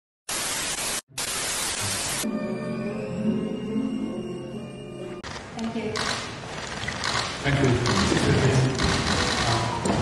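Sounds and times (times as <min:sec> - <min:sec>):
television static hiss: 0:00.3 - 0:02.2.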